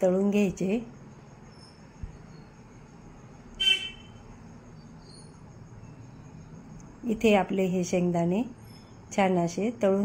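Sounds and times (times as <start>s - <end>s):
high-pitched horn toot: 3.6s - 4.2s.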